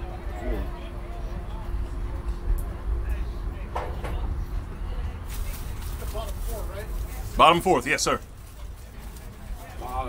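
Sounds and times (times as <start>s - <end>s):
distant indistinct voices: 0.0s - 10.0s.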